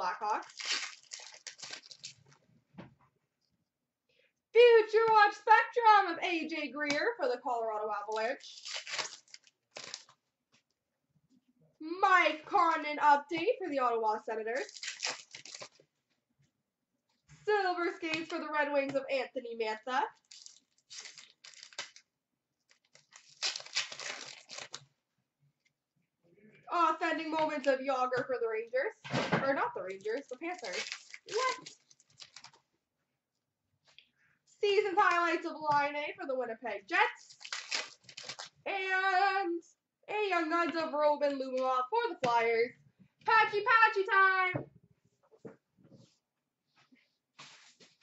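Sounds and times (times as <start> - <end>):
wrapper tearing and crinkling: 0.3 - 2.3, 8.1 - 10.2, 14.6 - 15.8, 20.2 - 22.0, 22.7 - 24.9, 29.8 - 32.6, 37.2 - 38.6.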